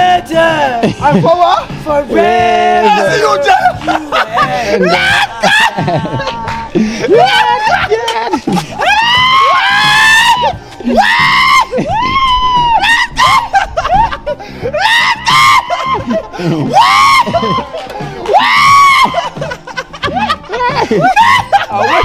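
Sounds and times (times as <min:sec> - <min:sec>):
people shrieking with laughter: 0:02.2 - 0:22.0.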